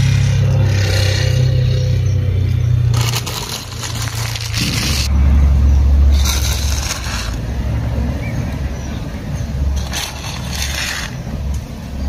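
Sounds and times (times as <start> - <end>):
engine droning: 0.0 - 12.0.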